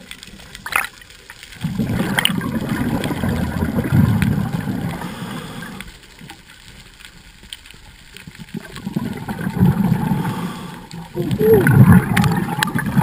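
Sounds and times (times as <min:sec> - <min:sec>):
underwater gurgling rumble: 0:00.0 - 0:13.0.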